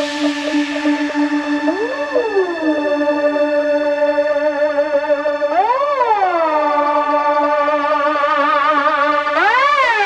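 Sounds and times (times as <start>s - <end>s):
synthesizer tone gliding down: 0.0s - 10.0s.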